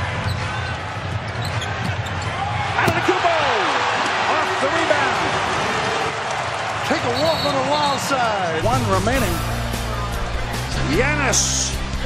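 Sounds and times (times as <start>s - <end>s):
arena crowd noise: 0.0s - 12.0s
sneaker squeak: 0.2s - 2.4s.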